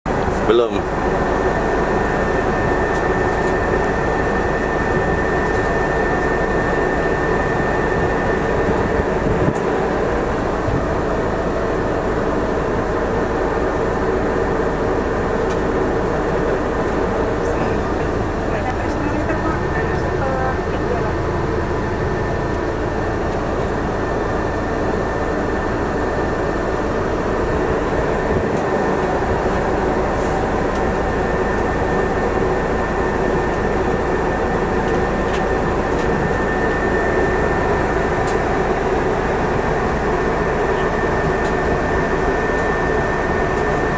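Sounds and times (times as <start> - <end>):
air conditioning running: 0.1 - 43.9
vehicle engine drone: 0.1 - 43.9.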